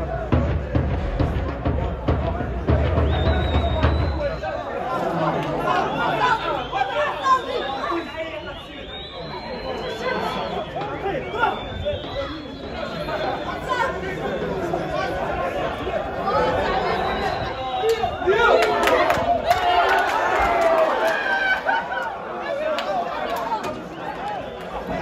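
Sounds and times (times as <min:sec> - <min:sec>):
overlapping chatter and shouts: 0:00.0 - 0:25.0.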